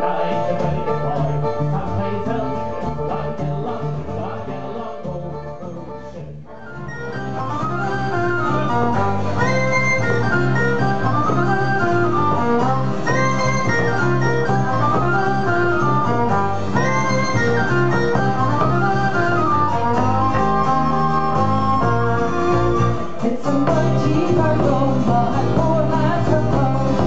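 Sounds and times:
fiddle melody: 0.0s - 27.0s
steady bass line: 0.0s - 27.0s
plucked strings: 6.6s - 27.0s.

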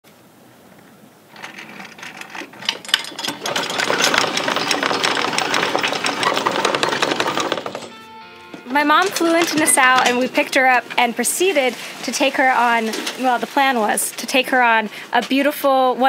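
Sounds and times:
fast dense rattling clatter: 1.3s - 8.0s, 8.9s - 14.3s.

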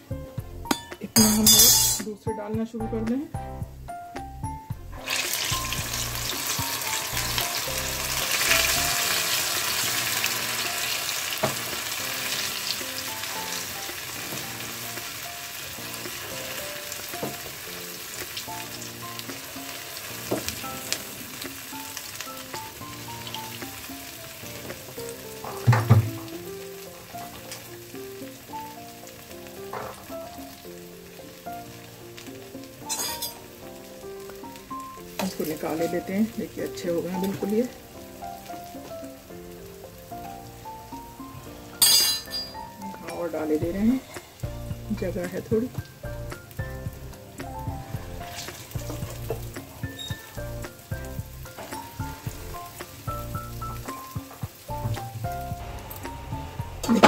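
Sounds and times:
soft background music: 0.0s - 57.0s
batter frying in hot oil: 4.8s - 57.0s.

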